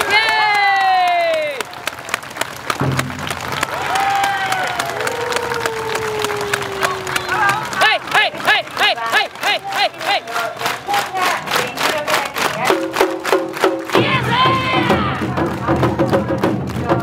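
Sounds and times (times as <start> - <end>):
quick percussion beat: 2.7 - 3.9, 7.2 - 17.0
dancers shouting rhythmic chant: 6.8 - 11.0, 13.9 - 15.3
drums shamisen and flute band: 12.7 - 17.0.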